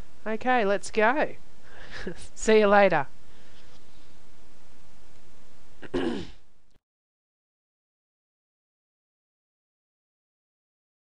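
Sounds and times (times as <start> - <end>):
person coughing: 5.8 - 6.4.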